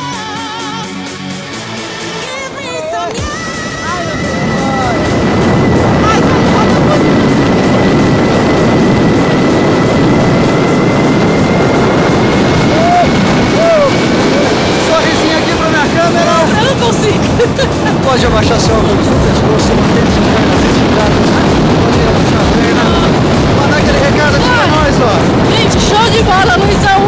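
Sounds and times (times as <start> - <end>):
wind rushing over microphone: 2.2 - 27.0
person whooping: 12.7 - 14.0.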